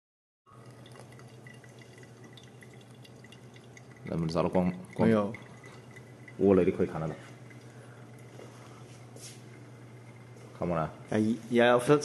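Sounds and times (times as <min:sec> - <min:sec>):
soft dripping ticks: 0:00.5 - 0:11.2
low steady hum: 0:00.5 - 0:12.0
water trickling into coffee filter: 0:00.5 - 0:12.0.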